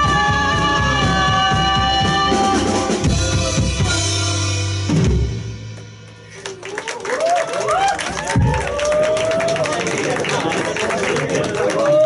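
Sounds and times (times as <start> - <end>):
live rock band: 0.0 - 6.7.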